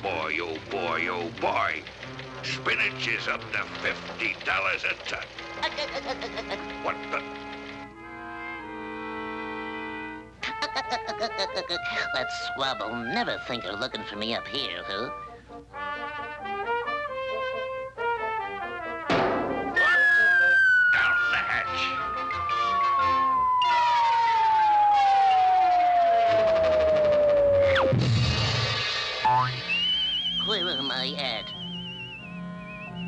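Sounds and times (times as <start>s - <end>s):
orchestral staccato music: 0.6s - 14.9s, 18.2s - 20.2s
balloon bursting pop: 19.1s - 20.4s
low crash: 19.1s - 20.9s, 23.6s - 29.3s
warbling whistle tone: 19.8s - 27.9s, 29.2s - 33.0s
descending slide whistle: 19.8s - 28.0s, 29.2s - 33.0s.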